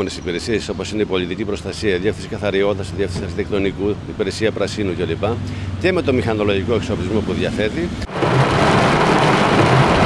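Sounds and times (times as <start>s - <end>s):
faint low car rumble: 0.0s - 10.0s
heavy rain on car windshield: 8.1s - 10.0s.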